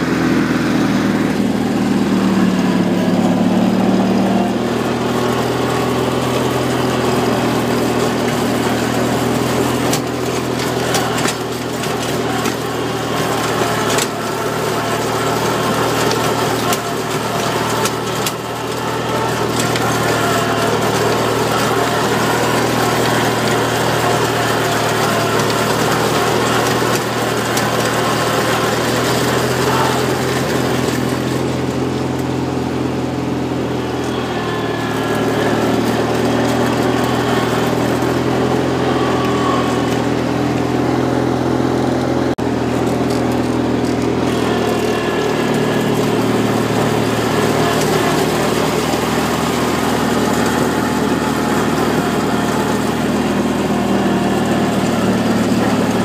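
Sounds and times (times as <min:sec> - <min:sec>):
grass blown into a hopper: 0:00.0 - 0:56.0
ride-on mower engine running: 0:00.0 - 0:56.0.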